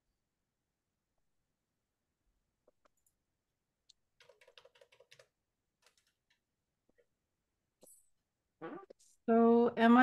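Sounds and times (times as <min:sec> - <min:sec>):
typing on computer keyboard: 0:04.2 - 0:06.4.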